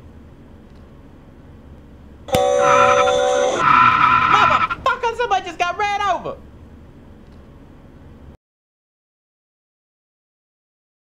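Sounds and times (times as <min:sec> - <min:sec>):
car tires screeching: 0:02.4 - 0:04.9.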